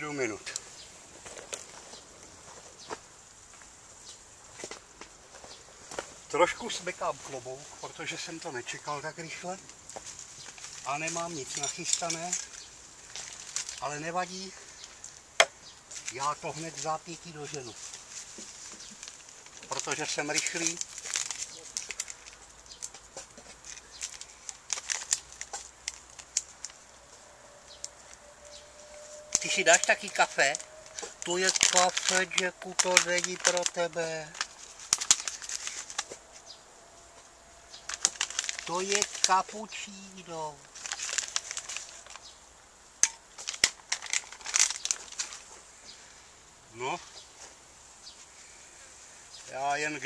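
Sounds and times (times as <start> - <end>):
sachets rustling and crinkling: 5.4 - 27.0, 27.7 - 36.6, 37.6 - 42.4, 43.0 - 46.1.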